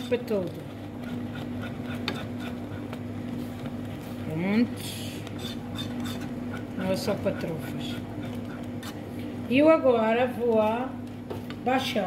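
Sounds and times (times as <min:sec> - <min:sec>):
steady low hum: 0:00.0 - 0:12.0
whisk scraping a pan: 0:00.3 - 0:04.1, 0:05.0 - 0:09.3.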